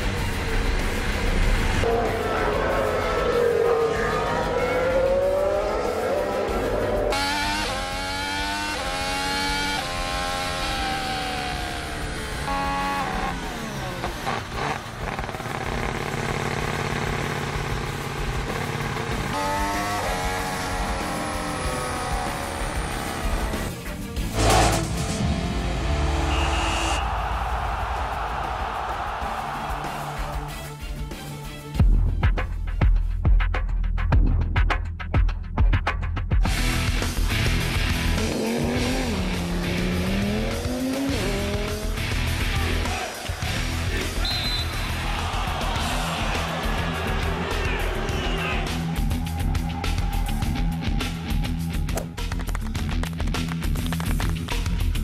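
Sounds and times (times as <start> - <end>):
music: 0.0 - 15.0, 17.6 - 55.0
racing car engine revving: 0.0 - 27.0, 36.5 - 51.8.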